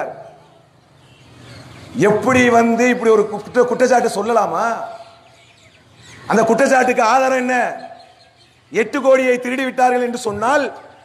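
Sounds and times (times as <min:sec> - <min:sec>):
man speaking over public address: 0:00.0 - 0:00.3, 0:02.0 - 0:05.1, 0:06.3 - 0:08.0, 0:08.7 - 0:11.0.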